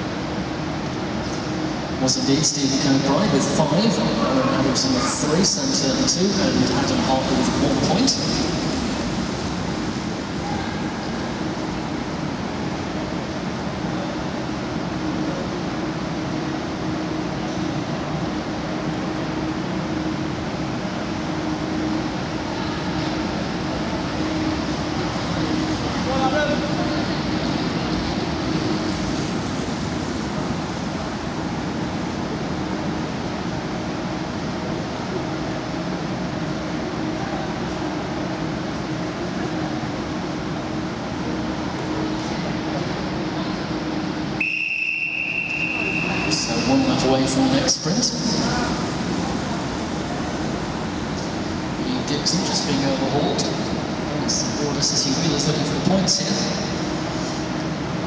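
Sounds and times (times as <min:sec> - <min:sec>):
steady hum: 0:00.0 - 0:58.0.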